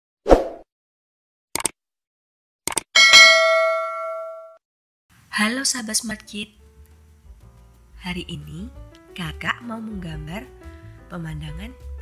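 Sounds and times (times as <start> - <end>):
bell ding: 3.0 - 4.6.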